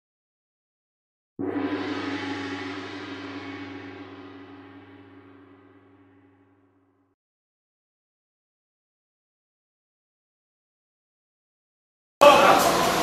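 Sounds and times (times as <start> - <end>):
deep metallic strike ringing: 1.4 - 7.2.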